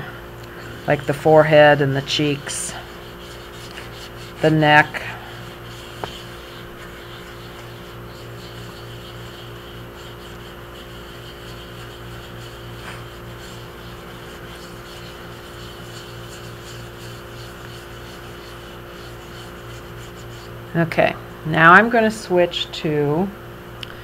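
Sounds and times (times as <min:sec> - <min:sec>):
scrubber pad rubbing porcelain: 0:00.0 - 0:20.8
electrical hum: 0:00.0 - 0:24.0.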